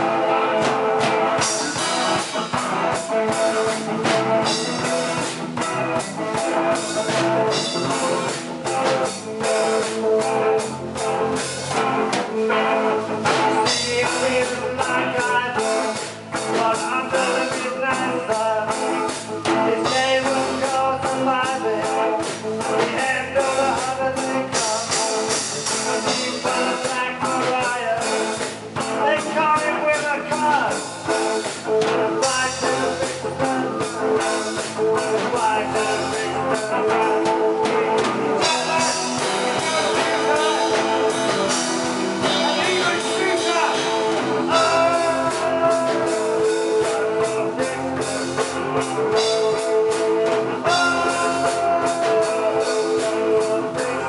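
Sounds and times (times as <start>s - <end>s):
drum kit: 0.0s - 54.0s
electric bass guitar: 0.0s - 54.0s
electric guitar: 0.0s - 54.0s
man singing into a microphone: 0.0s - 54.0s.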